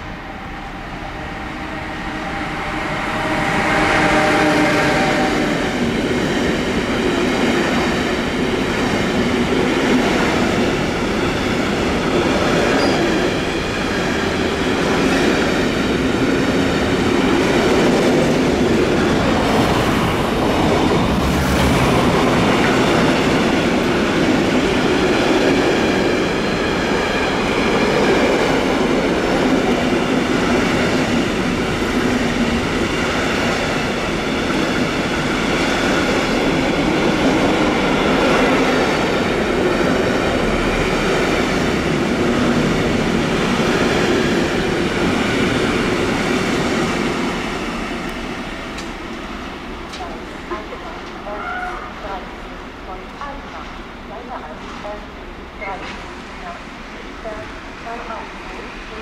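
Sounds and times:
electric locomotive tones: 0:10.3 - 0:14.6.

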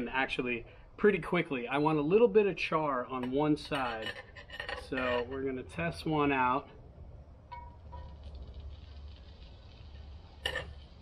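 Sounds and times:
faint sizzle: 0:07.6 - 0:11.0
metal tongs clinking on skillet: 0:10.4 - 0:10.8.

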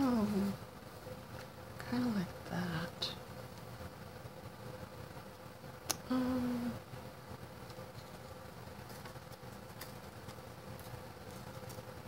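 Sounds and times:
woman humming: 0:05.9 - 0:06.8.

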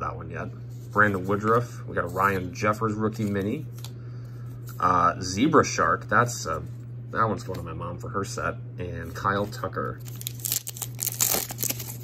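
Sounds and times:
plastic wrapper crinkling and tearing: 0:10.0 - 0:12.0.

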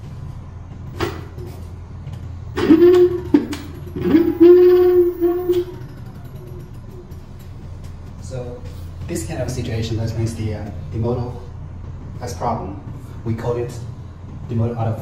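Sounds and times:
low hum: 0:00.0 - 0:14.6.

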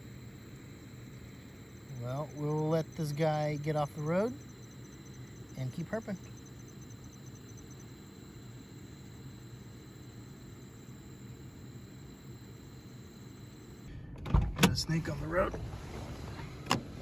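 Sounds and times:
fast-pulsing insect chirp: 0:00.0 - 0:13.9
insects trilling: 0:00.0 - 0:13.9
low steady rumble: 0:00.0 - 0:17.0.

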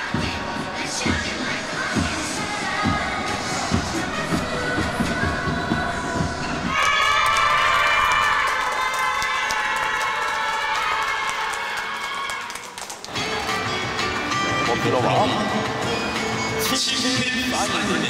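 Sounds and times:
children cheering and shouting: 0:06.7 - 0:12.7
hand clapping: 0:08.4 - 0:14.3.

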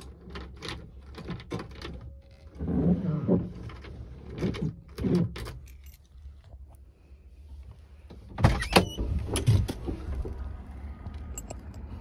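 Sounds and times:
clunks and clicks inside car: 0:08.1 - 0:10.4.

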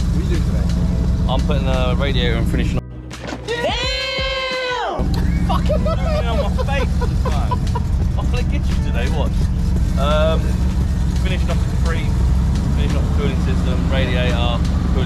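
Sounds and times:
car engine idling: 0:00.0 - 0:02.8, 0:05.0 - 0:15.0.

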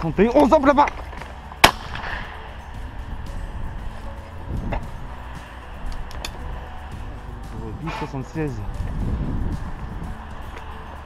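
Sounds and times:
shotgun shot: 0:01.6 - 0:02.3.

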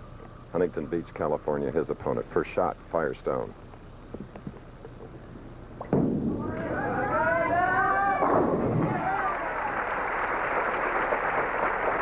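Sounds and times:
sharp knock: 0:05.8 - 0:06.4.

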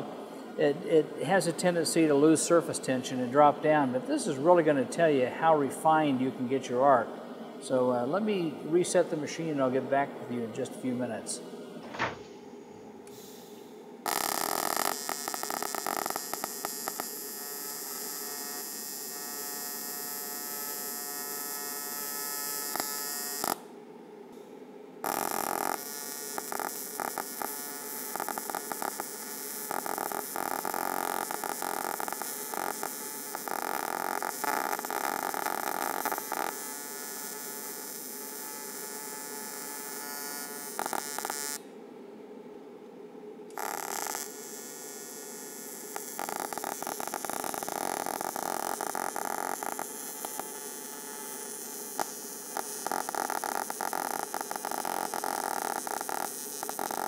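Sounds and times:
welding arc buzzing with crackle: 0:13.0 - 0:23.7, 0:25.0 - 0:41.6, 0:43.5 - 0:57.0.

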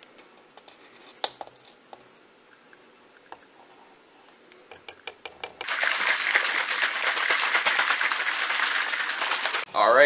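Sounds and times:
shaker bottle shaken by hand: 0:05.6 - 0:09.7.

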